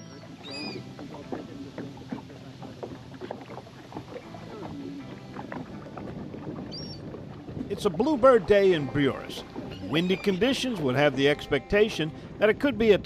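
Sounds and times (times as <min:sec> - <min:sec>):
boat motor running: 0:00.0 - 0:13.0
seabirds calling: 0:00.0 - 0:13.0.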